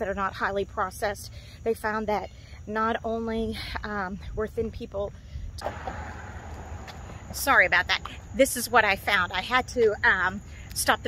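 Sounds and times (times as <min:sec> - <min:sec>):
passing car traffic: 0:05.6 - 0:08.4.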